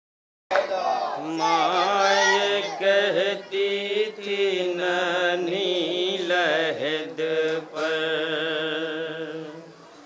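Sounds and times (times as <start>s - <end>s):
men chanting a mourning lament: 0.8s - 9.8s.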